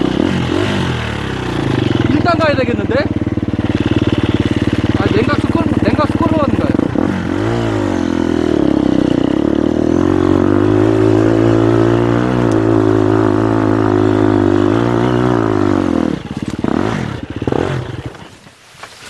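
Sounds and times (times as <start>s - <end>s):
dirt bike engine under load: 0.1s - 19.0s.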